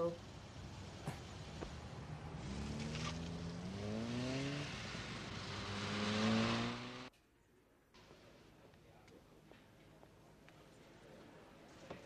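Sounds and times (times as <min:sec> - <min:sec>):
sports car engine accelerating: 0:01.6 - 0:07.1.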